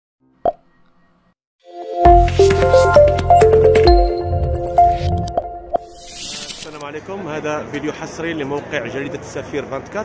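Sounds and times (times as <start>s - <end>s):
electronic music: 1.7s - 6.8s
rising swell effect: 1.7s - 6.8s.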